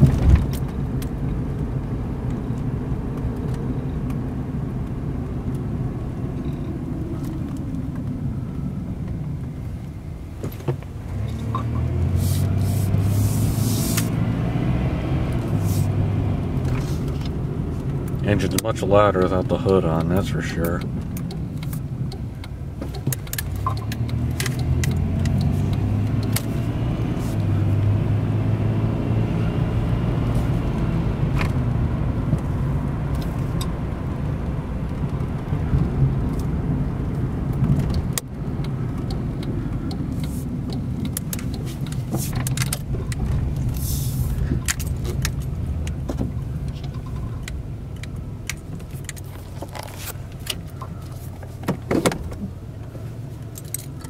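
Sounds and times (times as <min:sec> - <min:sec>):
car engine revving: 0:10.9 - 0:51.4.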